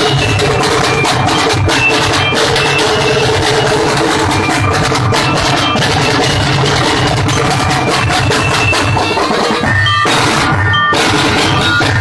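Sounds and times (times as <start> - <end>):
booming bass drums: 0.0 - 12.0.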